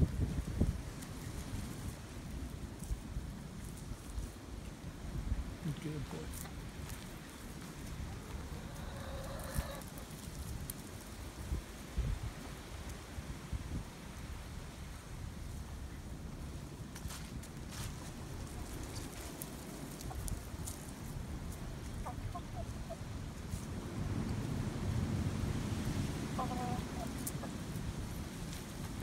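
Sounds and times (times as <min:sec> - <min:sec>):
wind buffeting microphone: 0:00.0 - 0:14.6.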